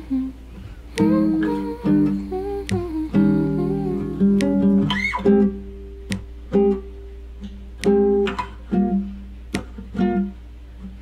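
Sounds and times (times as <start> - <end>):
fingerpicked classical guitar: 0.0 - 11.0.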